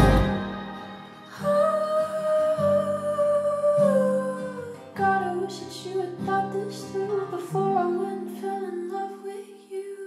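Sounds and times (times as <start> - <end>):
low musical accompaniment: 0.0 - 1.6
female pop vocal holding a note: 0.0 - 10.0.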